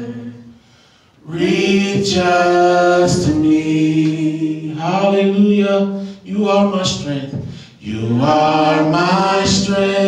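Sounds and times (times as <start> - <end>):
unaccompanied worship singing: 0.0 - 10.0.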